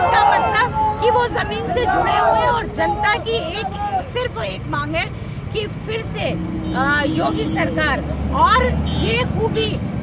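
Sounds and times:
woman talking: 0.0 - 9.8.

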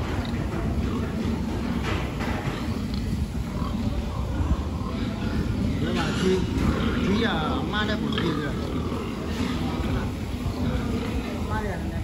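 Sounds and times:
pigs grunting: 0.0 - 12.0.

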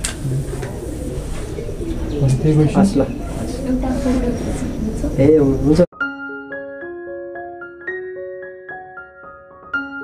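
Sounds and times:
bird cooing: 0.1 - 5.2.

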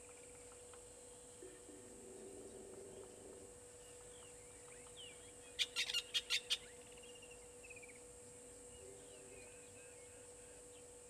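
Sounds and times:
steady low hum: 0.0 - 5.6
high steady hiss: 0.0 - 11.0.

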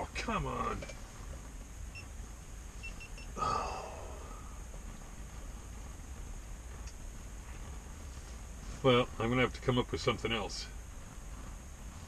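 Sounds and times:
steady low hum: 0.0 - 12.0
man sighing: 3.4 - 4.6.

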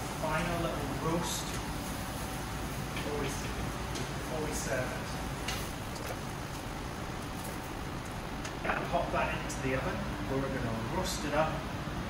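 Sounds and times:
grill hissing: 0.0 - 12.0.

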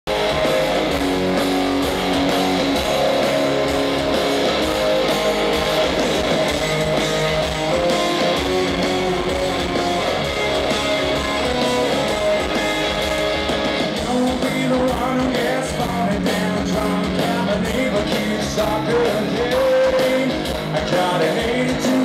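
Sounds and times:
electric guitars: 0.1 - 22.0
steady drum beat: 0.1 - 22.0.

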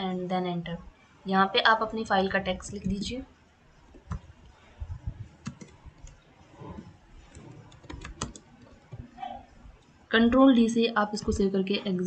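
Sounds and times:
computer keyboard typing: 3.9 - 4.4, 5.0 - 9.2.

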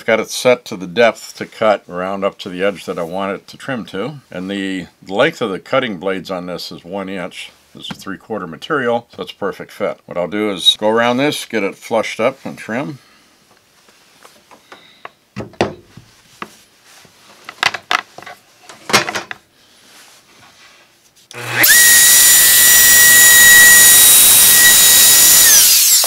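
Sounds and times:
knocks and rustles of handling: 13.4 - 21.3
router motor whine: 21.3 - 26.0.

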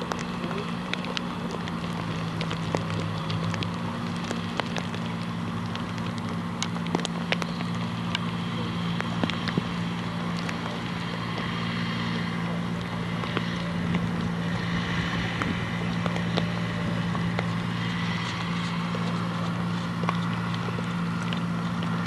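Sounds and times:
steady low hum: 0.0 - 22.0
wind on microphone: 0.0 - 22.0.

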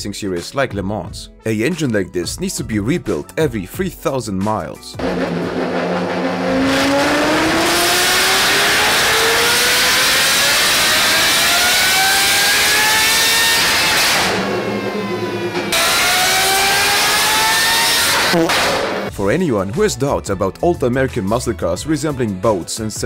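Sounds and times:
racing engine revving: 5.0 - 19.1.

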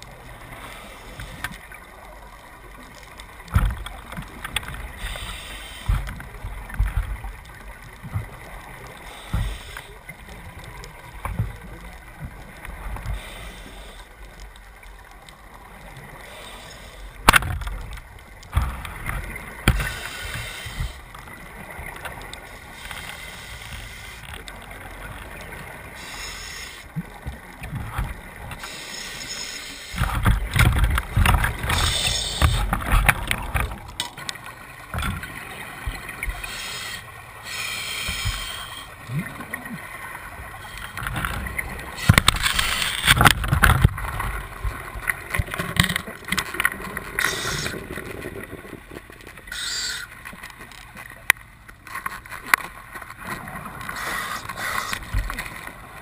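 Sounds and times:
muffled water movement: 0.0 - 56.0.

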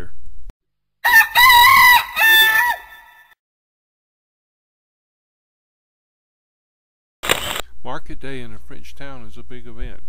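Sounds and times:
rooster crowing: 1.0 - 3.4.

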